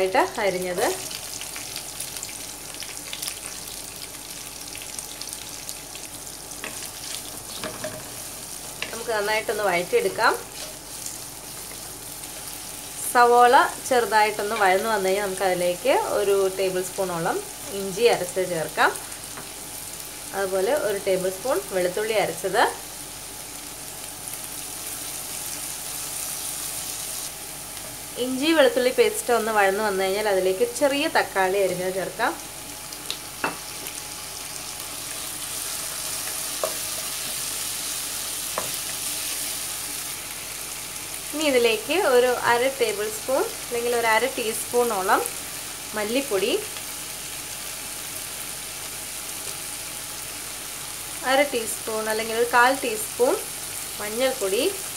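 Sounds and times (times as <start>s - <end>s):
onions sizzling in oil: 0.0s - 54.9s.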